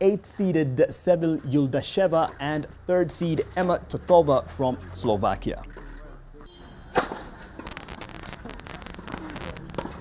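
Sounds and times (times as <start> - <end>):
distant voices: 1.0 - 10.0.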